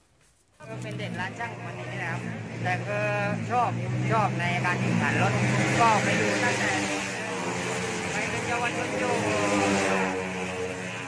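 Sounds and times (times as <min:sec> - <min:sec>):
motorcycle engine running: 0:00.6 - 0:11.0.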